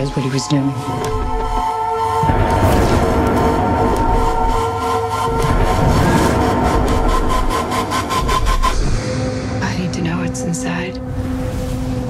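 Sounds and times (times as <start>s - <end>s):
fast pulsing beat: 0.0s - 10.4s
heavy low rumble: 0.0s - 12.0s.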